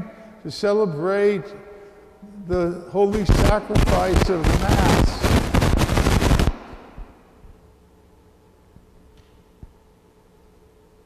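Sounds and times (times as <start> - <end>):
faint steady hum: 0.0 - 11.0
dense rapid crackle: 3.2 - 6.9.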